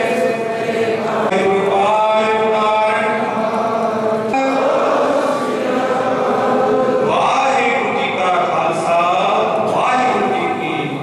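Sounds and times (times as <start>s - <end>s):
men chanting a prayer in unison: 0.0s - 11.0s.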